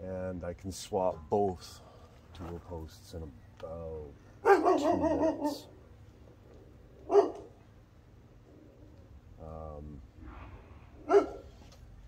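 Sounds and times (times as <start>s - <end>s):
dog barking: 4.4s - 5.7s, 7.0s - 7.6s, 11.0s - 11.6s.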